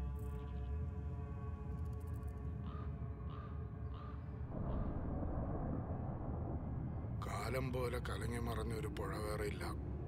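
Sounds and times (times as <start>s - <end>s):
low dark rumble: 4.4s - 10.0s.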